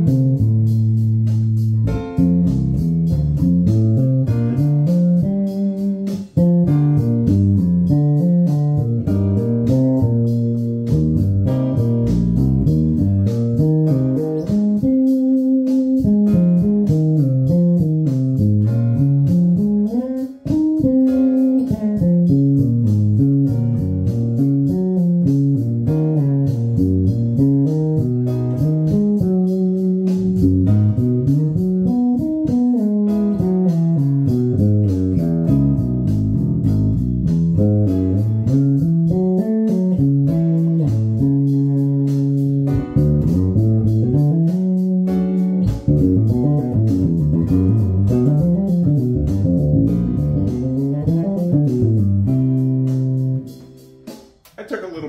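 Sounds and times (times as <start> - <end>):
electric bass guitar melody: 0.0 - 55.0.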